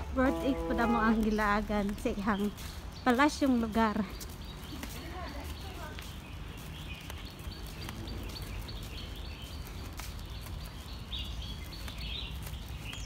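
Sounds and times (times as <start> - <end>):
birds chirping faintly: 0.0 - 13.0.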